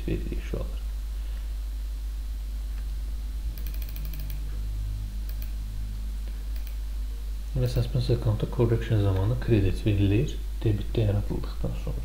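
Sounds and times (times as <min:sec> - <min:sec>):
steady low hum: 0:00.0 - 0:12.0
computer keyboard typing: 0:03.5 - 0:04.4, 0:05.3 - 0:05.6, 0:06.6 - 0:06.8.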